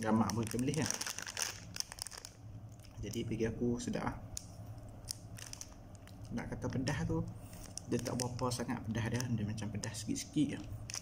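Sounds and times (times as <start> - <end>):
plastic wrapper crinkling: 0.0 - 3.2, 4.4 - 11.0.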